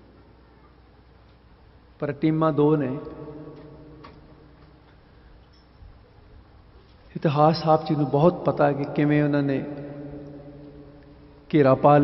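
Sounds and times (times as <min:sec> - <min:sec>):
man speaking: 0:02.0 - 0:03.2, 0:07.1 - 0:10.2, 0:11.5 - 0:12.0.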